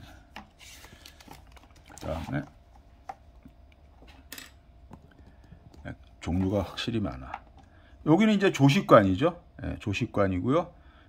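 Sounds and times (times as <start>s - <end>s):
glossy paper page crackling: 0.6s - 2.5s.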